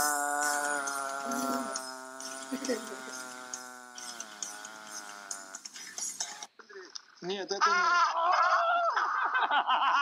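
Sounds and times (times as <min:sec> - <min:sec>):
man holding buzzy nasal note: 0:00.0 - 0:05.6.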